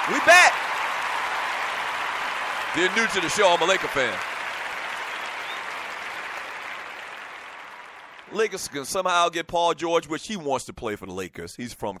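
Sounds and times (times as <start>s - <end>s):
applause: 0.0s - 9.2s.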